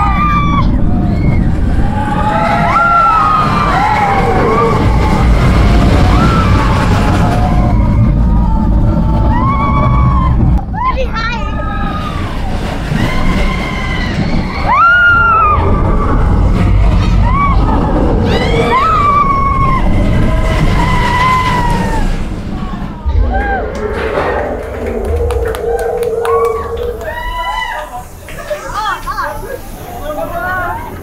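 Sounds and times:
riders screaming: 0.0 - 28.4
roller coaster track rumble: 0.0 - 31.0
wind on microphone: 23.0 - 27.9.

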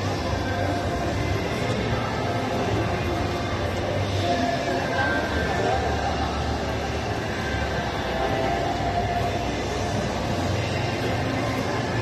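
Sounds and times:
indoor crowd din: 0.0 - 12.0.

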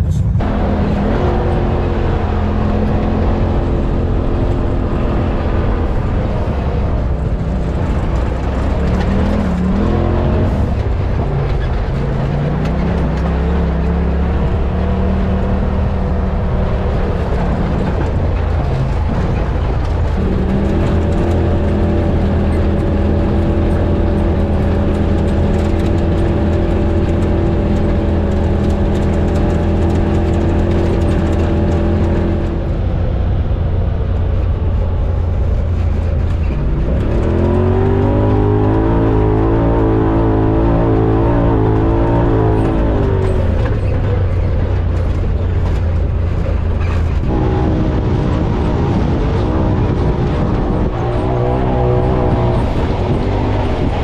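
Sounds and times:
side-by-side engine on dirt trail: 0.0 - 54.0.

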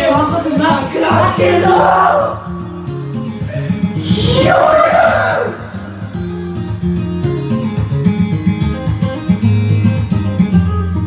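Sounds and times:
karaoke backing track with guitar: 0.0 - 11.0.

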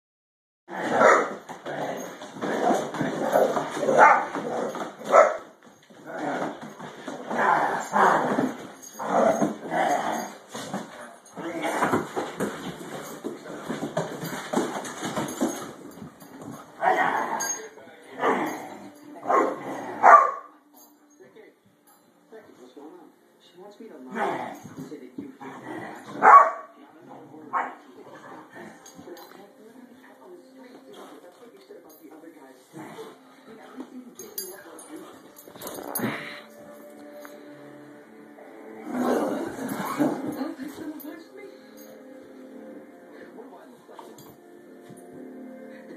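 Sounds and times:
dog barking: 0.9 - 1.4, 3.9 - 4.3, 5.0 - 5.5, 19.2 - 20.6, 26.2 - 26.8, 27.5 - 27.8.

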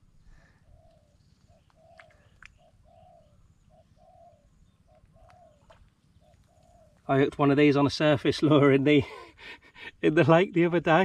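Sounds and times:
faint bird calling: 0.0 - 7.3
faint clicks: 0.8 - 2.6, 4.9 - 7.1.

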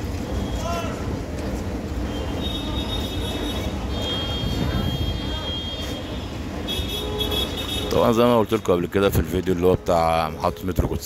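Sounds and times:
train rumbling: 0.0 - 11.0
high wheel squeal: 2.0 - 8.4.

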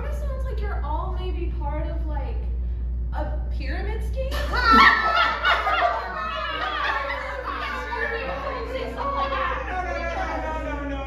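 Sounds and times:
overlapping chatter and calls: 4.3 - 11.0.

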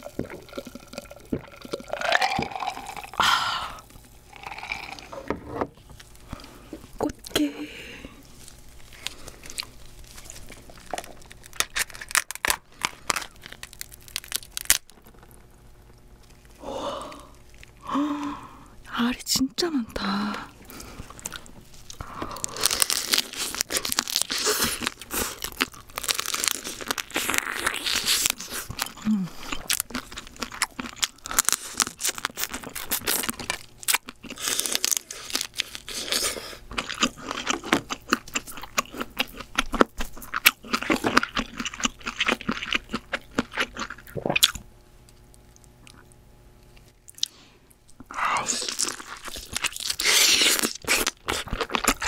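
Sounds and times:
chewing: 8.2 - 15.5, 20.7 - 52.0
crab shell cracking and crunching: 8.3 - 17.9, 20.9 - 52.0.

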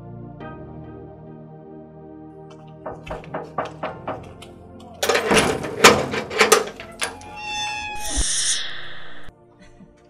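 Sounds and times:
knock on metal gate: 2.8 - 4.4
gate hinges squealing: 5.0 - 9.3.

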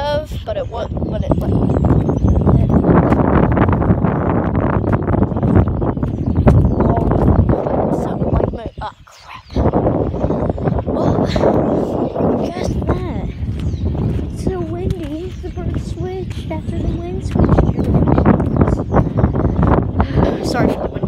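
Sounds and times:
wind buffeting microphone: 0.0 - 21.0.

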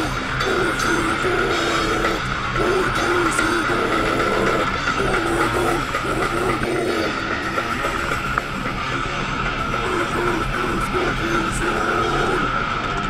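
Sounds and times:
death metal band playing live: 0.0 - 13.0.

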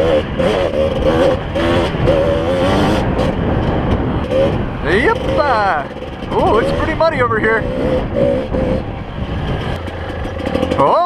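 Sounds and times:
dirt bike engine running: 0.0 - 11.0.

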